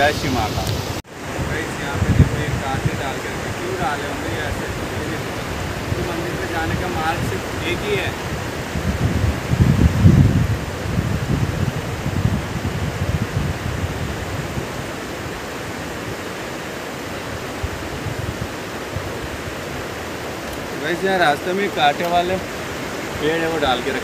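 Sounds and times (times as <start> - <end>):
river rushing over rocks: 0.0 - 24.0.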